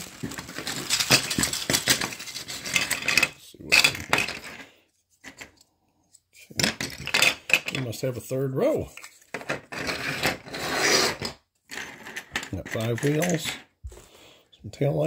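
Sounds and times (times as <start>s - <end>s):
plastic parts clattering on table: 0.0s - 5.6s, 6.5s - 8.0s, 8.9s - 13.7s.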